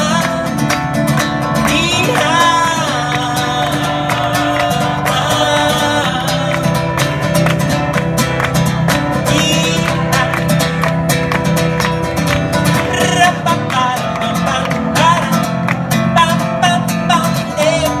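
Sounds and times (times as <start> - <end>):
man singing: 0.0 - 7.3, 9.0 - 11.0, 12.4 - 18.0
strummed acoustic guitar: 0.0 - 18.0.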